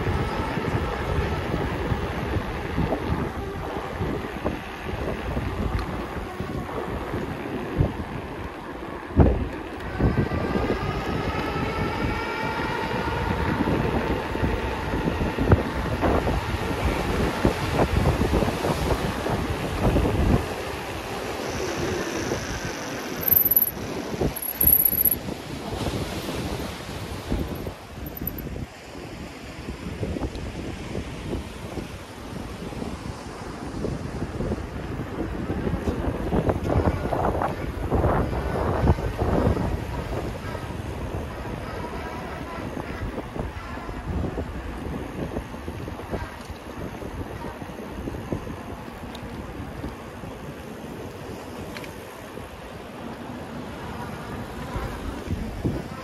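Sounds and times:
wind on microphone: 0.0 - 56.0.

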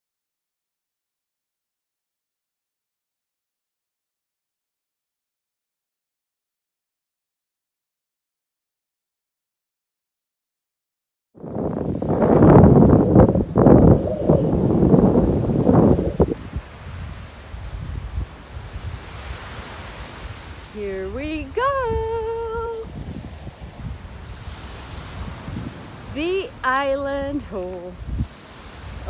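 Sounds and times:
ocean surf: 11.4 - 29.0
wind on microphone: 11.4 - 29.0
person humming: 20.8 - 22.9.

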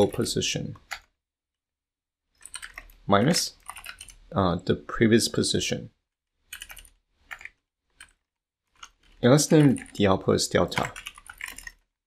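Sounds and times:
computer keyboard typing: 0.8 - 1.2, 2.4 - 4.2, 6.4 - 11.9.

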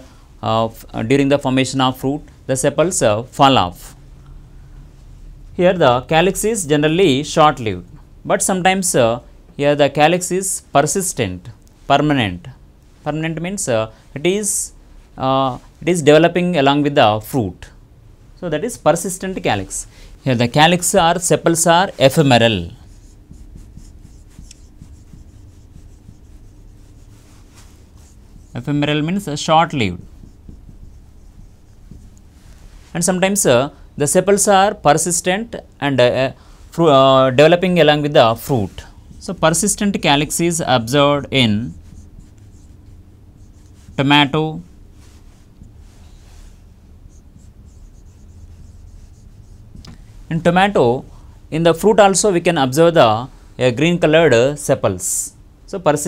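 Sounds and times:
low room hum: 0.0 - 56.0
marker rubbing on whiteboard: 19.0 - 32.7, 38.1 - 50.0
marker squeaks: 22.2 - 27.1.

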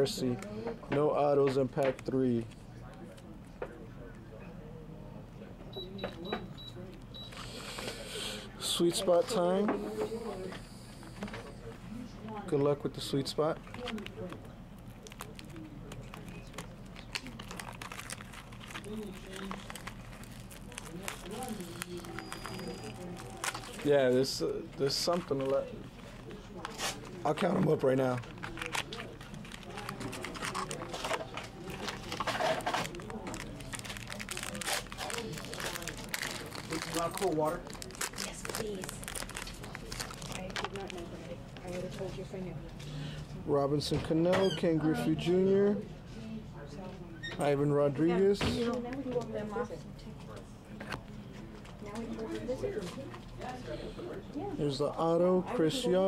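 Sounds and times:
foil card pack crinkling: 14.9 - 24.1, 26.7 - 41.2.

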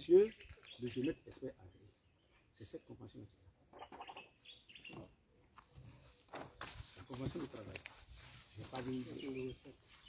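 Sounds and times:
faint bird chirps: 0.0 - 5.5.

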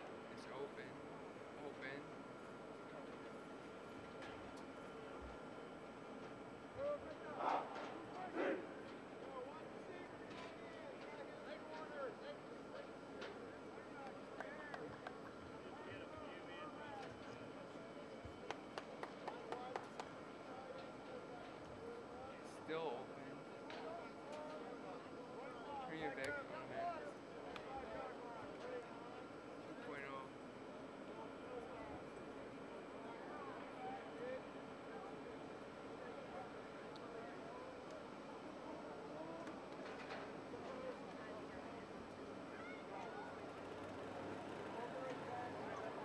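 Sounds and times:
distant voices calling and talking: 0.0 - 25.7
faint steady hum: 0.0 - 46.0
loud shouts: 7.3 - 8.7.

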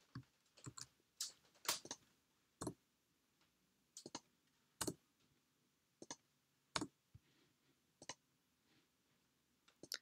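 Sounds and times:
mouse and keyboard clicks: 1.7 - 2.0, 4.0 - 5.0.

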